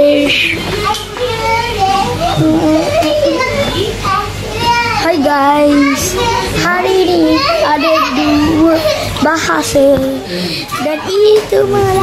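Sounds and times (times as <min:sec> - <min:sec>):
children shouting sing-song: 0:00.2 - 0:09.7.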